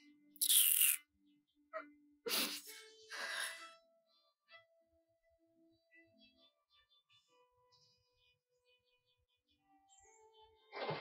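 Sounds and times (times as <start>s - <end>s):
soft background music: 0.0s - 11.0s
woman sobbing: 2.3s - 3.7s.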